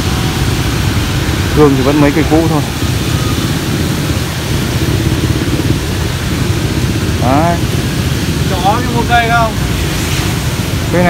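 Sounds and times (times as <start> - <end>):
low rumble: 0.0 - 11.0
rain on a wet street: 0.0 - 11.0.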